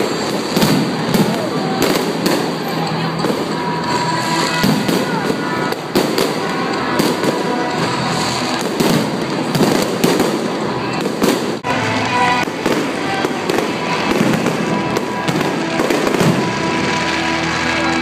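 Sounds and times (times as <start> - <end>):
fireworks bangs and crackling: 0.0 - 18.0.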